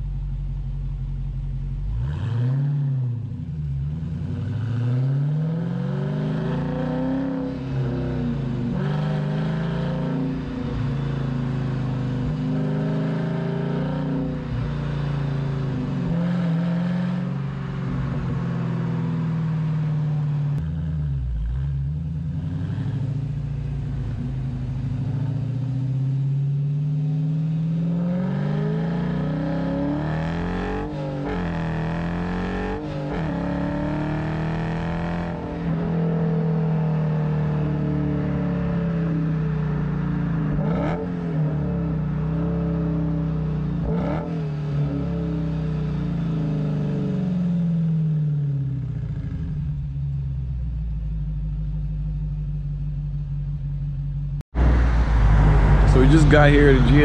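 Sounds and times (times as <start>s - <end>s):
car engine exhaust while driving: 0.0s - 57.0s.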